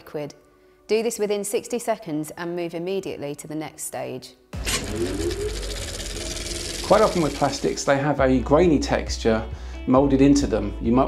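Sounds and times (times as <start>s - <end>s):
low hum with rising tone: 4.6s - 8.0s
man speaking: 6.8s - 8.8s.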